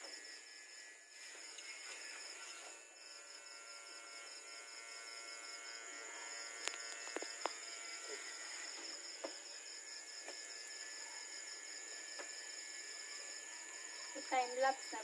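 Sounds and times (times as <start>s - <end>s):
crickets trilling: 0.0s - 15.0s.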